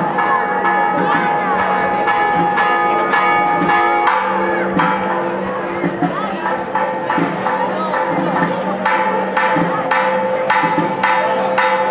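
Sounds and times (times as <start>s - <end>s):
church bells pealing: 0.0s - 11.9s.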